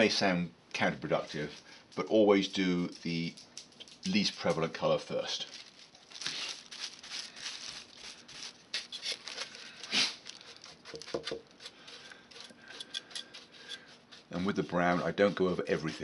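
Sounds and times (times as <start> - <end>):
paintbrush scratching rough plaster: 9.9 - 16.0.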